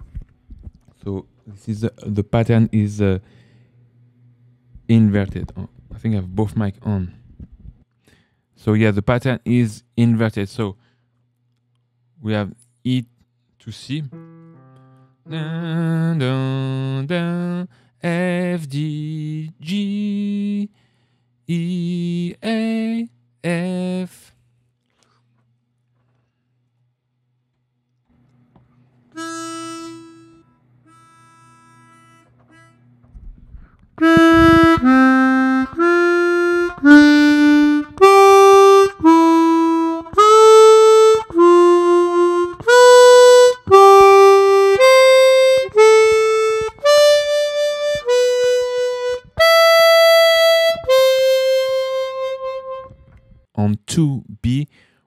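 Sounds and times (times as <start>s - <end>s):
harmonica playing slow notes: 29.1s - 33.0s, 33.6s - 53.4s.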